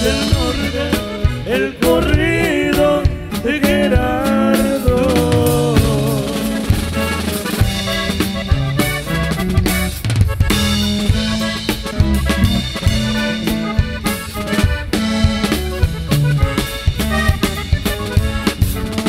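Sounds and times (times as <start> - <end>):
bass line: 0.0 - 19.0
button accordion melody: 0.0 - 19.0
drum kit beat: 0.0 - 19.0.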